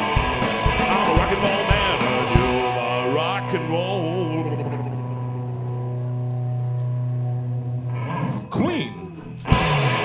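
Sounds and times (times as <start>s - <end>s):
electric guitar chord ringing: 0.0s - 10.0s
person singing: 0.6s - 5.3s.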